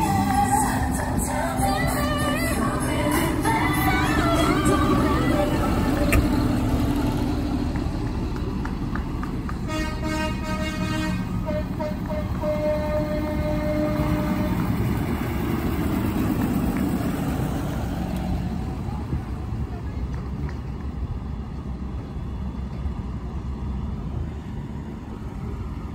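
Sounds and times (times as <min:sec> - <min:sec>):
tractor engines driving past: 0:00.0 - 0:25.9
horn toots: 0:09.6 - 0:14.8.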